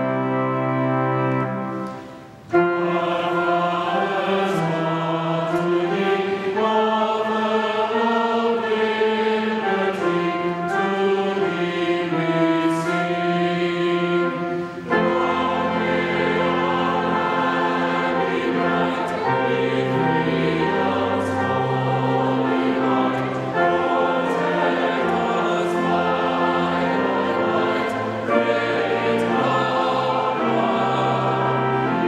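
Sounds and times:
choir singing a hymn: 0:00.0 - 0:32.0
organ accompaniment: 0:00.0 - 0:32.0.

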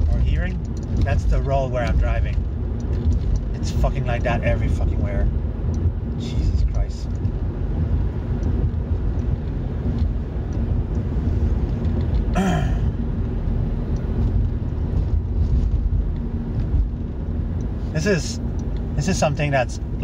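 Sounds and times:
car road noise rumble: 0:00.0 - 0:20.0.

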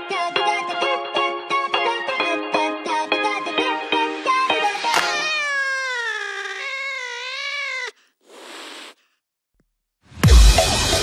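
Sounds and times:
meow-like wail: 0:04.9 - 0:08.0
short hiss-like burst: 0:08.2 - 0:09.0.

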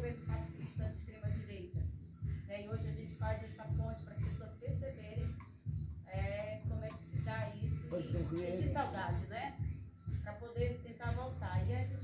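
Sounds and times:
background music with bass beat: 0:00.0 - 0:12.0.

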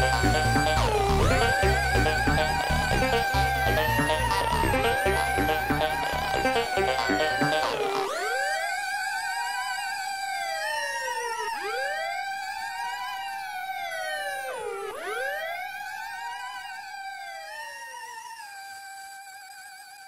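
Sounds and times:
wobbling synthesizer note: 0:00.0 - 0:08.3
swooping synth sweeps: 0:00.0 - 0:08.7.

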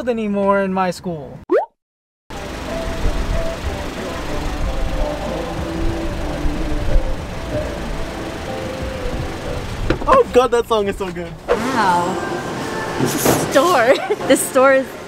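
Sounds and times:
muffled music: 0:02.3 - 0:10.3
car rumbling: 0:02.3 - 0:14.9.

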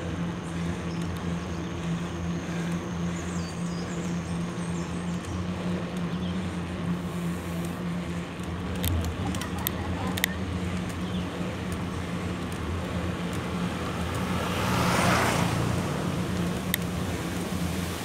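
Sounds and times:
vehicle engine running: 0:00.0 - 0:18.0
wind and road noise: 0:00.0 - 0:18.0.

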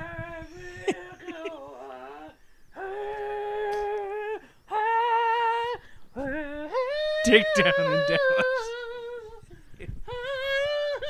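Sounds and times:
man singing long high notes: 0:06.2 - 0:09.4.

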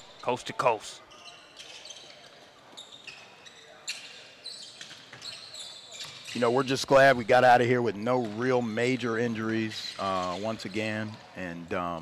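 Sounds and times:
sneaker squeaks on wooden floor: 0:01.1 - 0:06.8.

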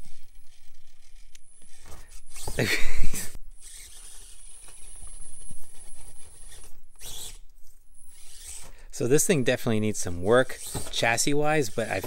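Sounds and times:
small electric motor whining: 0:00.0 - 0:08.9, 0:10.4 - 0:12.0.

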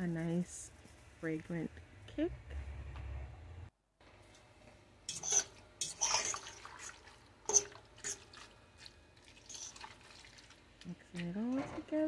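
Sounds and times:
wet squelching of stirred pasta: 0:05.2 - 0:11.5.

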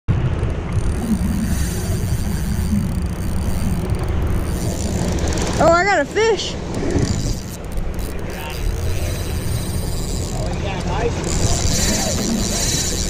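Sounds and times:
steady low rumble: 0:00.1 - 0:13.0
fishing reel clicking and whirring: 0:00.7 - 0:13.0.

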